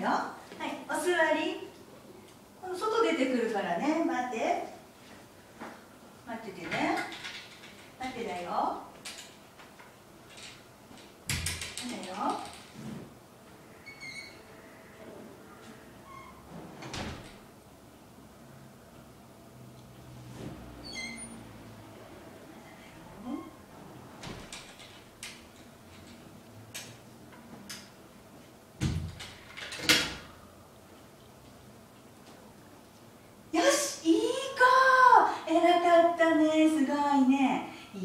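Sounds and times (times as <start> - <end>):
door unlatched and opened: 28.8 - 30.2.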